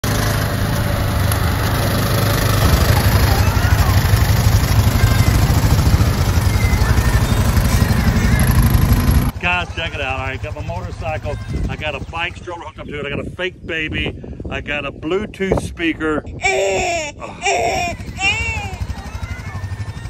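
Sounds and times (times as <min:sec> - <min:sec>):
motorcycle engine running: 0:00.0 - 0:12.2, 0:17.9 - 0:20.0
wind and road noise: 0:00.0 - 0:19.8
man talking: 0:09.3 - 0:16.4.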